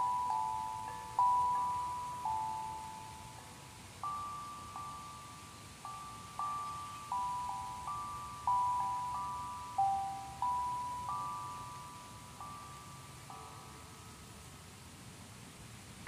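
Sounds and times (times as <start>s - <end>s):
sound bowls ringing: 0.0s - 14.4s.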